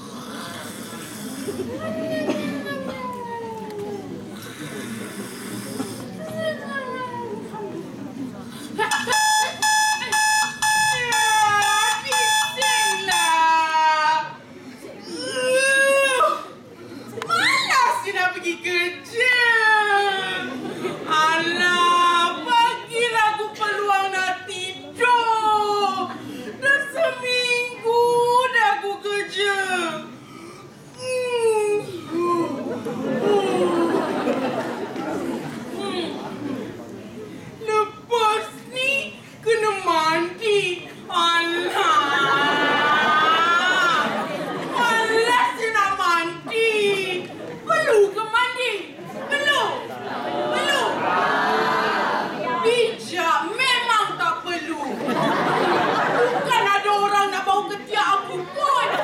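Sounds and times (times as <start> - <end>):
overlapping chatter: 0.0 - 59.0
electronic alarm beeping: 8.9 - 13.3.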